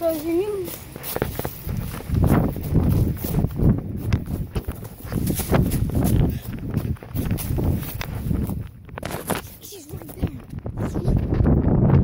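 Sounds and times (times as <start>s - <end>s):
running footsteps on grass: 0.0s - 12.0s.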